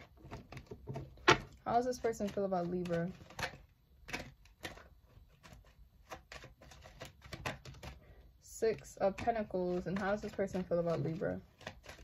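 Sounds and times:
cards being shuffled: 0.2s - 8.0s, 8.7s - 12.0s.

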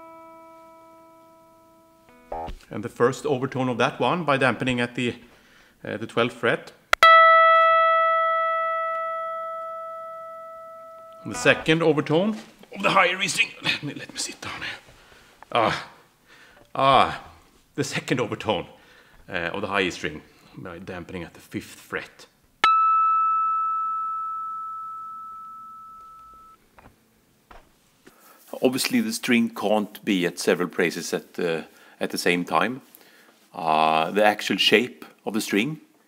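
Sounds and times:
bell-like guitar harmonic: 0.0s - 2.6s, 7.0s - 11.9s, 22.6s - 26.6s.

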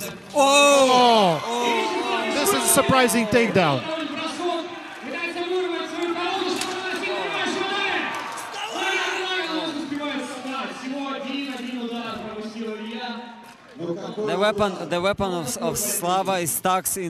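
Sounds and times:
man speaking: 0.0s - 4.2s, 14.2s - 17.0s.

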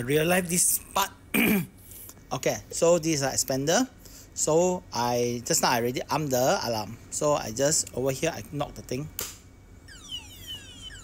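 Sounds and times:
alarm sweeping falling tones: 9.9s - 11.0s.

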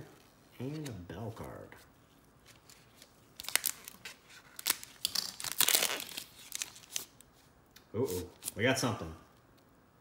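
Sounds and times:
card pack wrapper tearing and crinkling: 2.6s - 7.2s.

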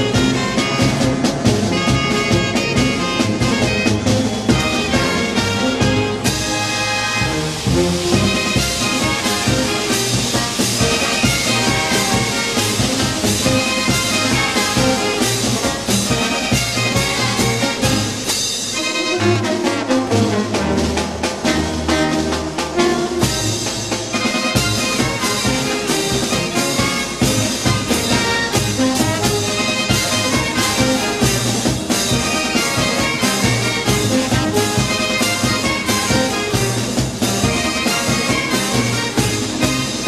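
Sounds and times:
brass band playing: 0.0s - 40.0s.

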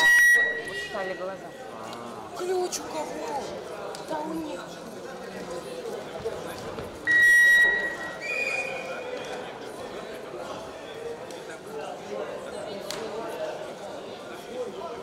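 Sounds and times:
high-pitched signal tone: 0.0s - 1.2s, 7.1s - 8.2s
crowd chatter: 0.0s - 15.0s
people talking and calling out: 0.0s - 15.0s.

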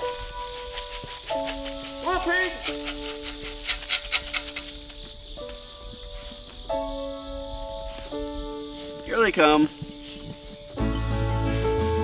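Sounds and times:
dry corn pattering on ground: 0.0s - 11.1s
crickets droning: 0.0s - 12.0s
music of slow held chords: 9.8s - 12.0s.

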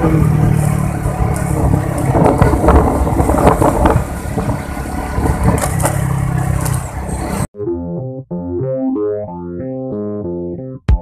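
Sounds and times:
wind rush on microphone: 0.0s - 5.9s
motorcycle engine running: 0.0s - 7.5s
synthesizer music: 7.6s - 11.0s.

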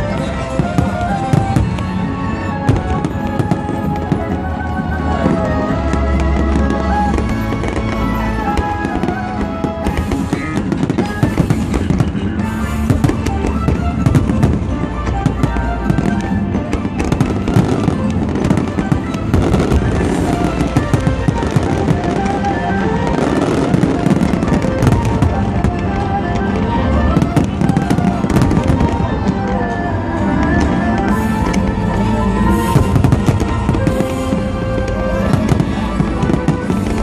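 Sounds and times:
fireworks bursting and crackling: 0.0s - 37.0s
music playing: 0.0s - 37.0s.

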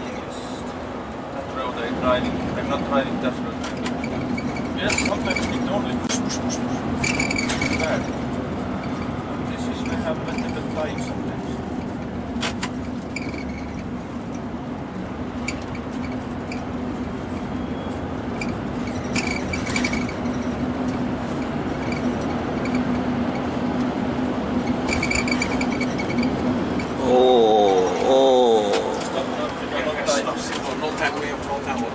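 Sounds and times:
low engine hum: 0.0s - 31.9s
road noise: 0.0s - 31.9s.

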